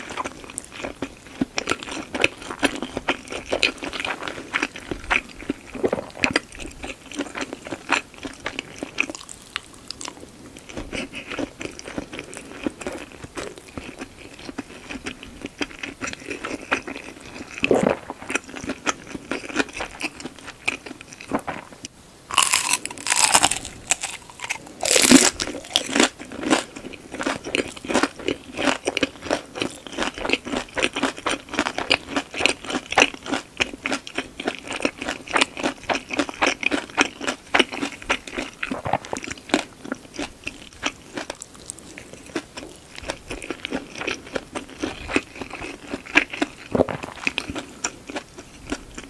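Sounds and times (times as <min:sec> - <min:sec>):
crisp crunches: 0:17.5 - 0:30.1.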